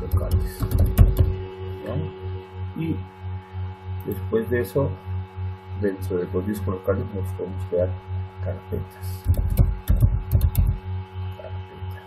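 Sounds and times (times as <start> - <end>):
keyboard keys clicking: 0.0 - 1.4, 9.2 - 10.8
pulsing electrical hum: 0.0 - 12.0.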